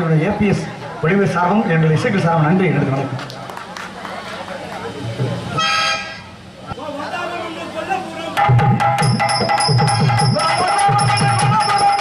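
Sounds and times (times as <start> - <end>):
horn-like toot: 5.6 - 6.4
people talking: 6.6 - 8.4, 10.0 - 12.0.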